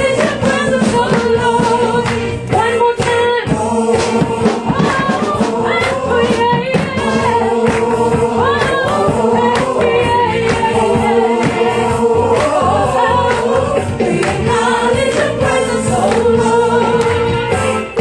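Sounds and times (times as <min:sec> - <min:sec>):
gospel choir singing: 0:00.0 - 0:18.0
instrumental accompaniment: 0:00.0 - 0:18.0
percussion: 0:00.0 - 0:18.0.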